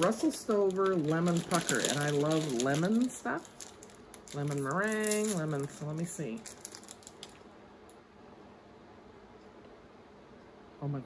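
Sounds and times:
candy wrapper clicks: 6.4s - 7.4s.

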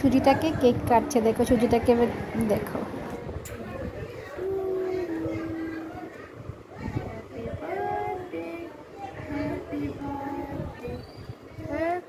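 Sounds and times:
person singing a long held note: 4.4s - 6.1s.

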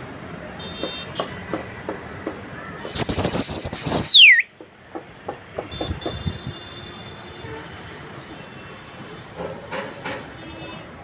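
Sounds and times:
person whistling shrill warble: 2.9s - 4.5s.

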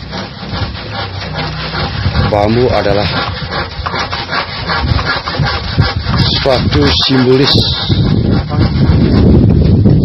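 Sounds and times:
hand tool rasping on bamboo pole: 0.0s - 10.0s.

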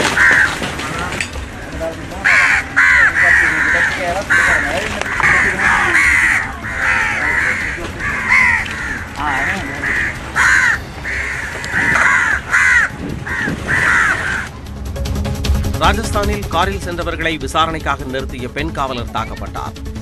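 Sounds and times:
crows cawing: 0.0s - 14.6s
news bulletin music: 0.0s - 20.0s.

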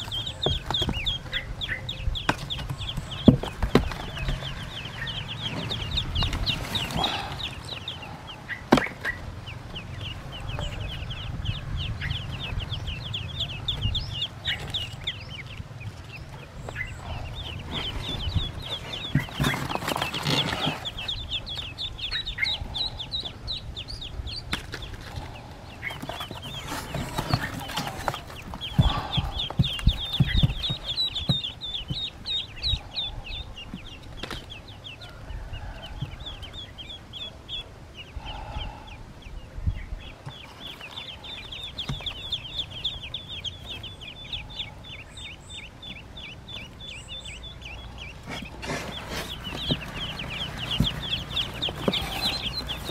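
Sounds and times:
ducklings peeping: 0.0s - 52.9s
bumps and rustles: 2.2s - 7.9s, 12.4s - 21.9s, 24.3s - 32.9s, 48.0s - 52.9s.

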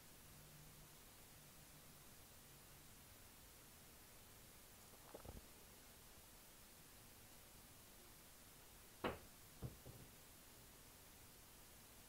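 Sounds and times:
faint room hiss: 0.0s - 12.0s.

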